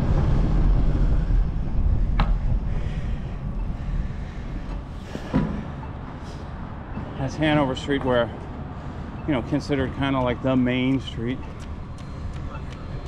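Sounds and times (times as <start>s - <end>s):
wind and road rumble: 0.0s - 13.0s.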